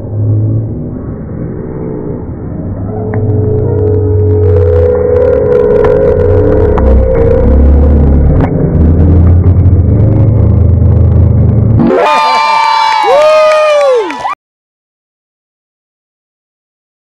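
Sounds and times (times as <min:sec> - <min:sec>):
music sting: 0:02.7 - 0:12.2.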